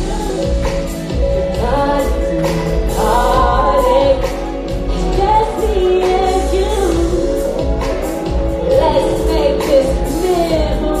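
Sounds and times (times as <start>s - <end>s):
band bass and drum beat: 0.0s - 11.0s
woman singing: 0.0s - 11.0s.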